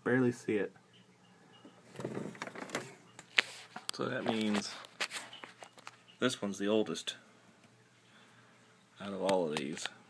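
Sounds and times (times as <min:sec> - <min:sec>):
handling scraping and rubbing: 0:01.9 - 0:06.0.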